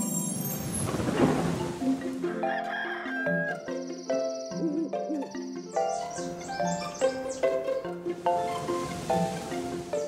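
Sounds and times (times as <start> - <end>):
cartoon background music: 0.0 - 10.0
rooster crowing: 2.3 - 3.6.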